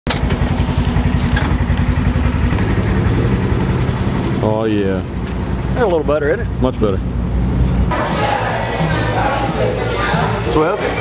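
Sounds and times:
utility vehicle engine running: 0:00.1 - 0:07.9.

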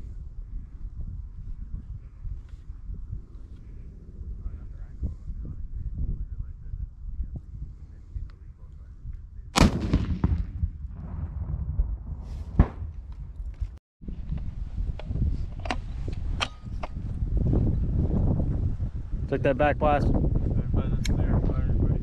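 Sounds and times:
wind rumbling on microphone: 0:00.0 - 0:22.0
sharp launcher shots: 0:09.6 - 0:11.5.

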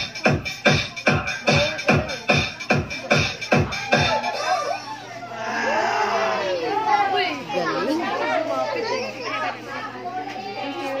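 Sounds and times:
women and children chattering: 0:00.0 - 0:11.0.

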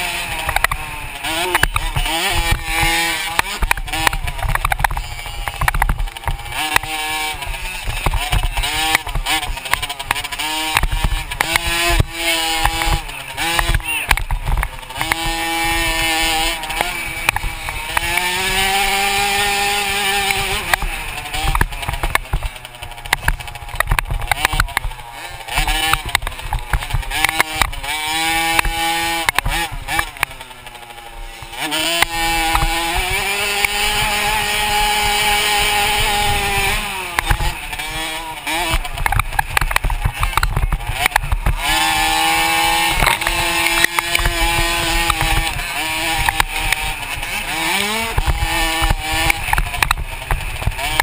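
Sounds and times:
dirt bike engine revving: 0:00.0 - 0:51.0
sharp knocks from bumps: 0:00.0 - 0:51.0.

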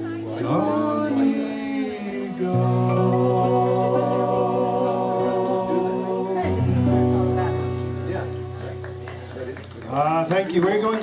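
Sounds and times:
woman singing: 0:00.0 - 0:07.6
electric guitar chords ringing: 0:02.2 - 0:10.0.

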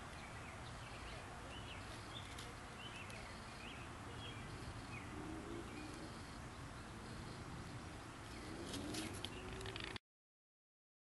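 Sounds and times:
faint outdoor background: 0:00.0 - 0:10.0
turtle scraping soil: 0:08.3 - 0:10.0.

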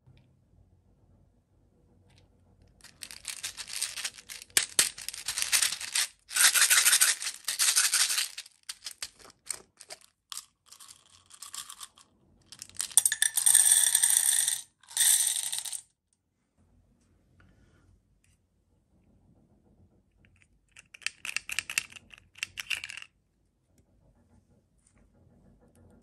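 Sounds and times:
beads pattering into metal tin: 0:02.8 - 0:15.8
beads rattling in plastic bottle: 0:02.8 - 0:15.8.

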